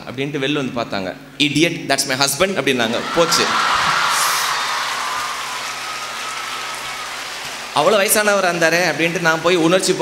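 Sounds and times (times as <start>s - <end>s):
audience applauding: 3.0s - 9.7s.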